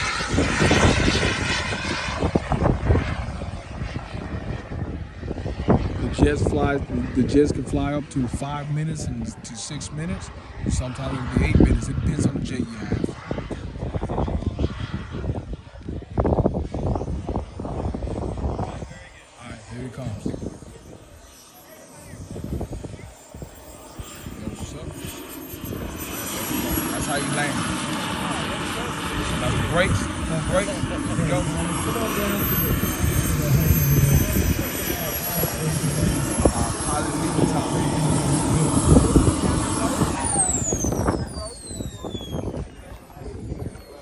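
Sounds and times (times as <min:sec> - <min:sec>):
model jet turbine whining: 0:00.0 - 0:44.0
rushing exhaust: 0:00.0 - 0:44.0.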